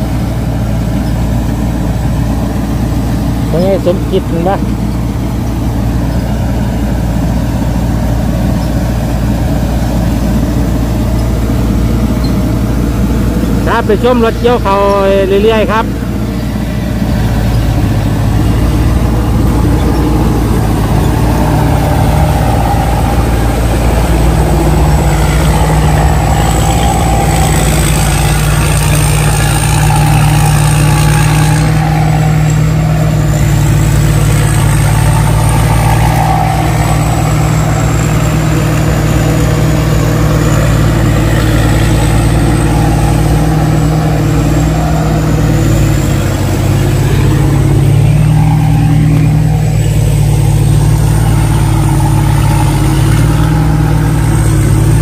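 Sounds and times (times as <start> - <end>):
harvester engine running: 0.0 - 55.0
thin high whine: 0.1 - 55.0.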